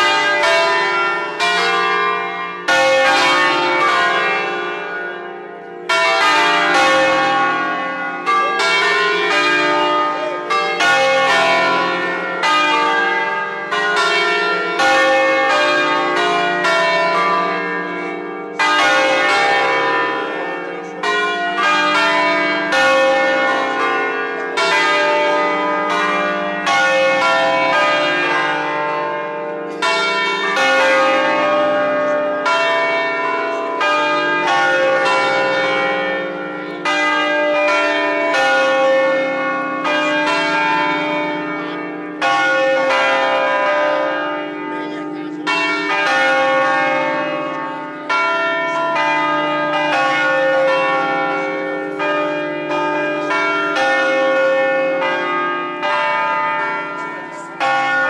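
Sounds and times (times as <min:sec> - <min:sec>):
church bells ringing: 0:00.0 - 0:58.0.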